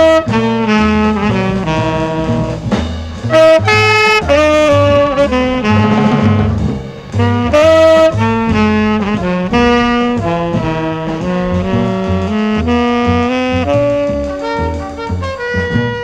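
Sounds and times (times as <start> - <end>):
double bass line: 0.0 - 16.0
saxophone and trumpet notes: 0.0 - 16.0.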